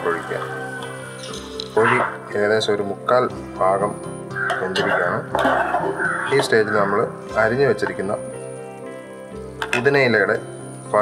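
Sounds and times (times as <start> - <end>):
curry sizzling in a frying pan: 0.0 - 2.8
background music: 0.0 - 11.0
person speaking: 5.9 - 8.3.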